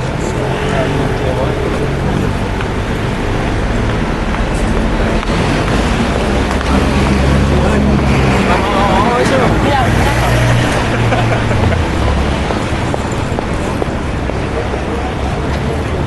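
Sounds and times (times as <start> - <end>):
general traffic: 0.0 - 16.0
indistinct voices: 0.0 - 16.0
vehicle engine rumbling: 0.0 - 16.0.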